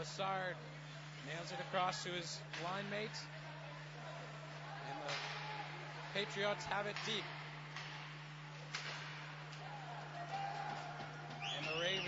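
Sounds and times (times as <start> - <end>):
faint crowd noise: 0.0 - 8.8
low arena hum: 0.0 - 12.0.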